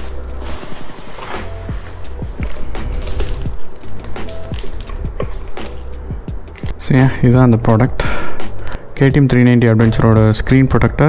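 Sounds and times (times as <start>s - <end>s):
plastic packaging crinkling: 0.0s - 6.0s
music with repeating bass line: 1.4s - 7.8s.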